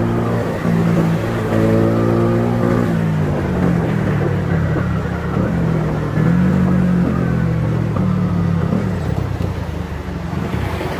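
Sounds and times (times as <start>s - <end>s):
motorcycle engine running: 0.0s - 9.6s.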